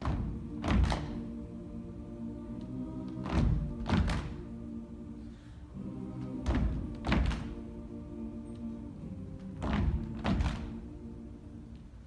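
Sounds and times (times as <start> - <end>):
choir holding low chords: 0.0 - 12.0.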